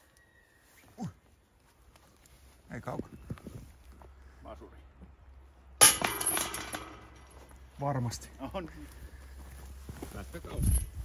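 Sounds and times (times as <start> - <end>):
disc striking chain basket: 5.8 - 7.4.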